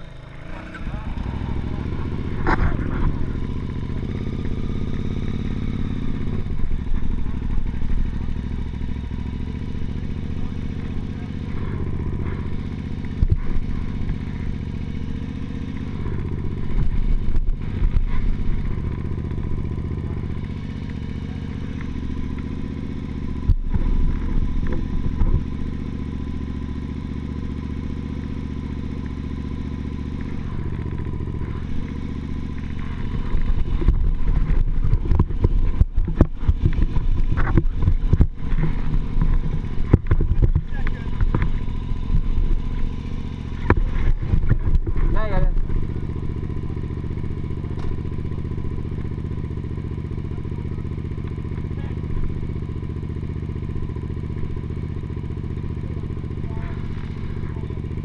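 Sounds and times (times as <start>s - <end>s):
motorcycle engine revving: 0.0s - 58.0s
sharp knocks from rough ground: 2.2s - 4.5s, 13.1s - 14.5s, 23.4s - 25.6s, 30.1s - 48.2s.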